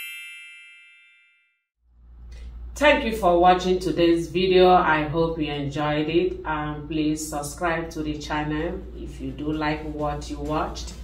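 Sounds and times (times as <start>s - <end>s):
bell-like chime ringing: 0.0s - 1.7s.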